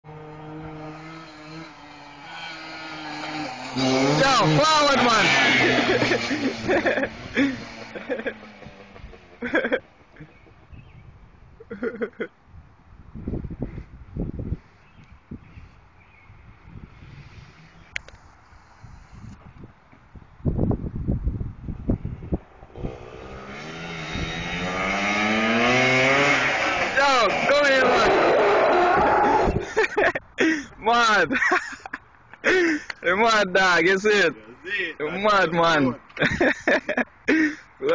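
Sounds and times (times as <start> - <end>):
quad bike engine running: 0.1 - 11.0, 22.6 - 29.3
man's voice: 4.0 - 6.2, 27.0 - 28.3, 30.4 - 31.6, 32.5 - 36.1.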